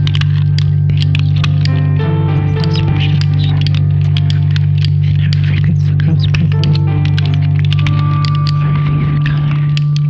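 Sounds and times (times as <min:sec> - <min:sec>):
crackling clicks: 0:00.0 - 0:10.0
loud low hum: 0:00.0 - 0:10.0.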